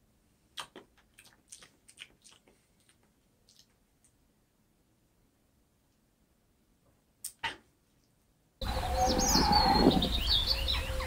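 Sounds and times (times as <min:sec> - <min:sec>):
small birds chirping: 0:08.6 - 0:11.0.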